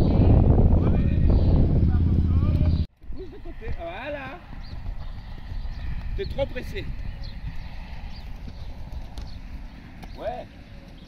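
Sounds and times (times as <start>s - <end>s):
loud low rumble: 0.0s - 2.9s
horse hoofbeats on sand: 4.1s - 11.0s.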